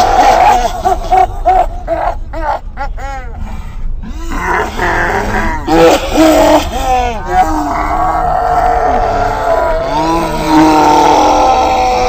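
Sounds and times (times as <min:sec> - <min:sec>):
low rumble: 0:00.0 - 0:12.0
people groaning: 0:00.0 - 0:12.0.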